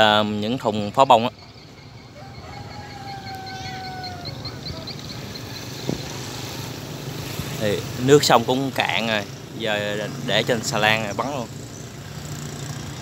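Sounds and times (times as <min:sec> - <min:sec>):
faint distant voices: 0:02.2 - 0:11.5.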